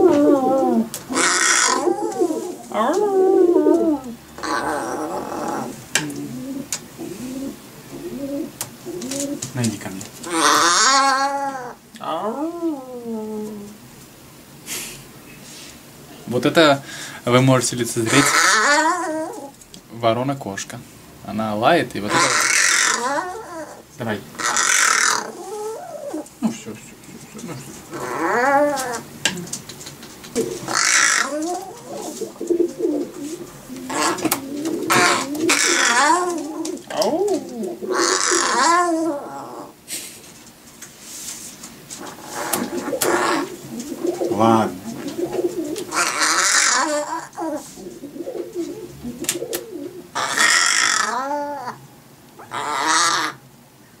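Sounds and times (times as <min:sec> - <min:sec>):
crow harsh hissing rasp: 0:01.1 - 0:02.6, 0:18.1 - 0:19.4, 0:22.1 - 0:26.2, 0:30.0 - 0:36.6, 0:37.9 - 0:38.8, 0:42.0 - 0:44.2, 0:45.3 - 0:47.9, 0:50.2 - 0:51.3
crow soft warbling: 0:27.9 - 0:39.7.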